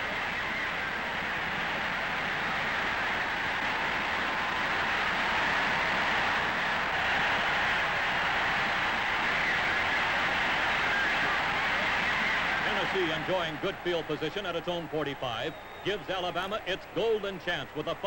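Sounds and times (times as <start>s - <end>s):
stadium crowd cheering: 0.0s - 18.0s.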